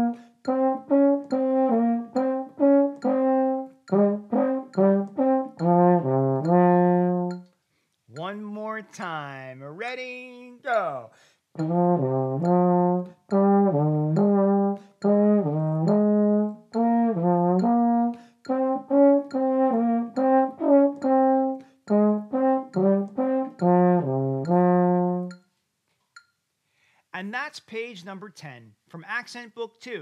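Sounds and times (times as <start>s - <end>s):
baritone horn melody: 0.0s - 7.4s, 11.6s - 25.3s
player breathing: 11.1s - 11.5s, 26.6s - 27.1s.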